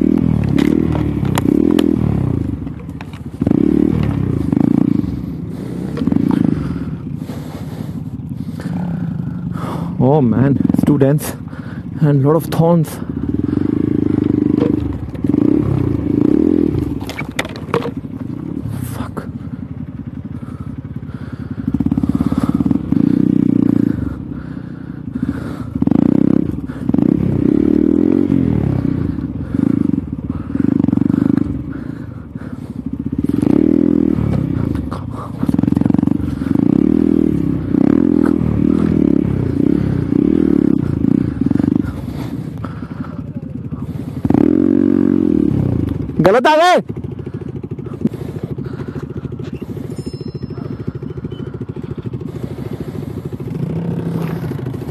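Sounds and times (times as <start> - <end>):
motorcycle engine revving: 0.0 - 54.9.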